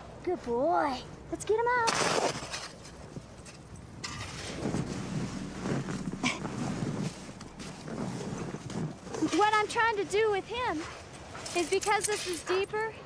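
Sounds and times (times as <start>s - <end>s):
snow being dug and scraped: 4.0s - 12.6s.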